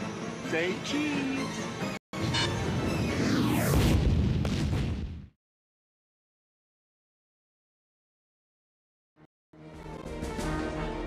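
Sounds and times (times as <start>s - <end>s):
explosion blast rumbling: 2.8s - 5.4s.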